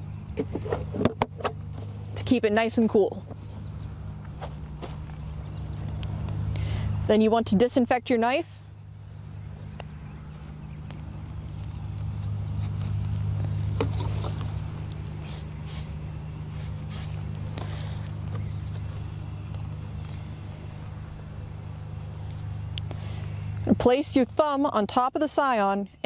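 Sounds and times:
low motor hum: 0.0s - 26.0s.

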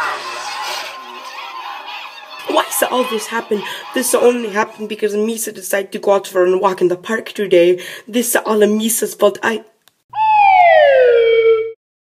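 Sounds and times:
high tone gliding down: 10.1s - 11.8s.

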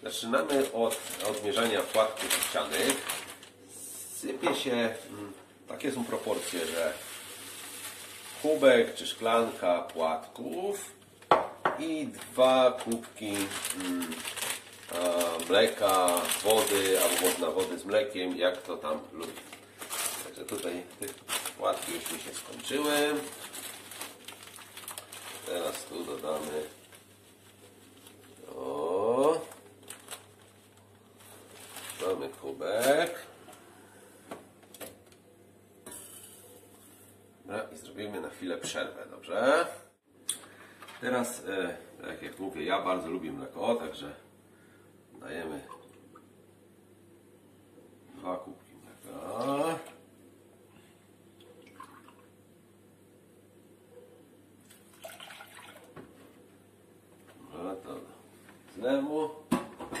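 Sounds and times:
person speaking: 0.0s - 23.8s, 25.2s - 26.9s, 28.3s - 29.8s, 31.9s - 33.5s
paper bag crinkling: 0.1s - 3.6s, 5.8s - 10.2s, 12.0s - 33.3s
oats trickling into a glass mug: 54.9s - 55.8s.

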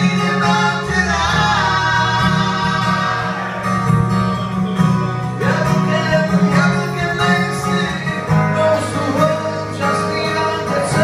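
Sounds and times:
men singing: 0.0s - 4.0s, 5.4s - 11.0s
strummed acoustic guitars: 0.0s - 11.0s.

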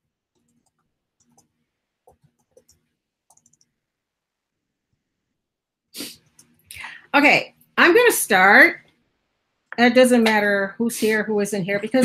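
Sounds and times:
computer mouse clicks: 0.4s - 1.5s, 2.1s - 3.7s
person speaking: 9.8s - 12.0s.

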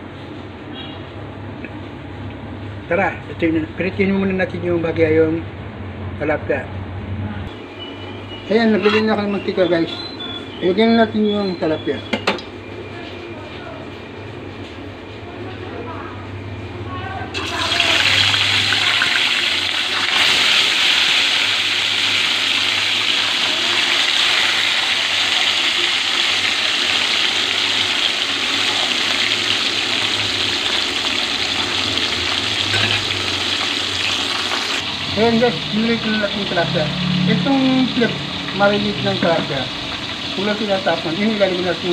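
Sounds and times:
fish sizzling in hot oil: 17.4s - 41.9s.

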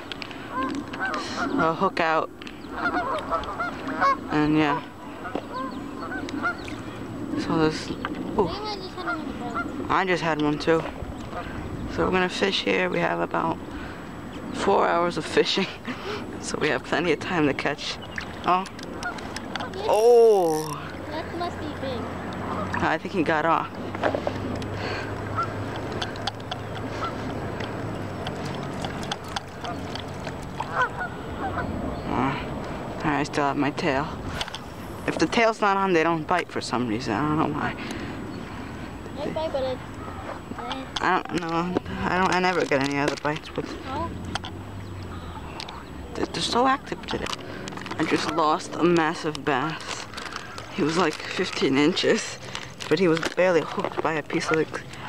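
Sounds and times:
birds calling: 0.0s - 55.0s
goose honks: 2.7s - 4.4s, 5.2s - 6.6s, 25.3s - 25.6s, 30.6s - 31.7s.

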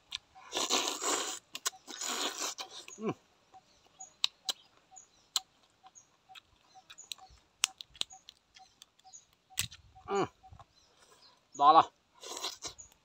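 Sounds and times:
crab shell cracking and crunching: 6.3s - 9.8s.

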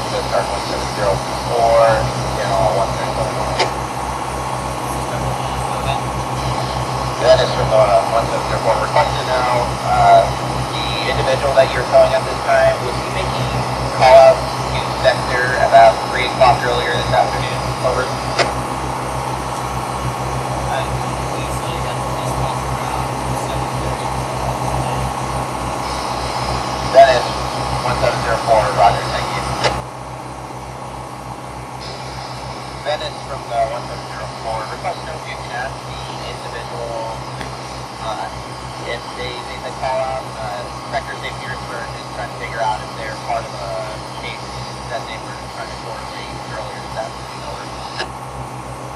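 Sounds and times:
voices over marine radio: 0.0s - 18.6s, 19.2s - 29.8s, 31.8s - 48.3s
boat engine droning: 0.0s - 48.9s.

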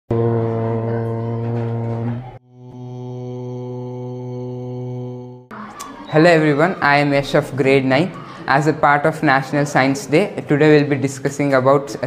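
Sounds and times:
man chanting: 0.1s - 5.5s.

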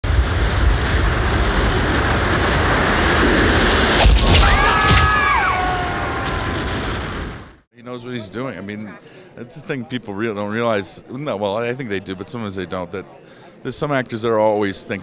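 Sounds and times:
sharp hits: 0.0s - 7.0s
long rushing rumble: 0.0s - 7.6s.

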